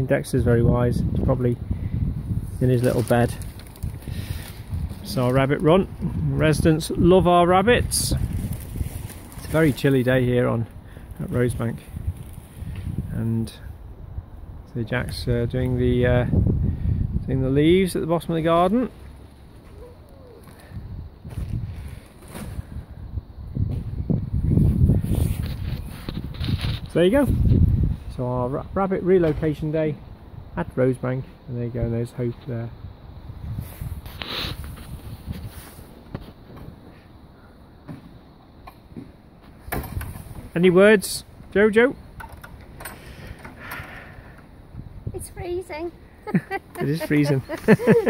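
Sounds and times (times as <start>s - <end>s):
wind rumbling on microphone: 0.0s - 30.6s, 31.8s - 37.4s, 41.2s - 48.0s
soft rustle: 8.1s - 10.2s, 24.6s - 28.1s, 33.4s - 37.1s
faint bird call: 19.6s - 20.8s.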